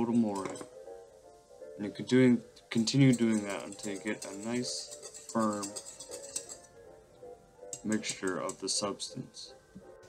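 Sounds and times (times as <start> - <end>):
background music: 0.0 - 10.0
whisk stirring water: 2.7 - 6.8, 7.7 - 8.9
wire whisk clicking against bowl: 3.0 - 6.7, 7.7 - 8.7.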